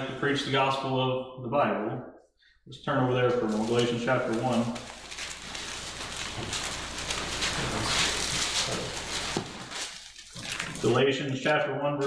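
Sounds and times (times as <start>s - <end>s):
thin pages rustling and turning: 3.3s - 11.0s.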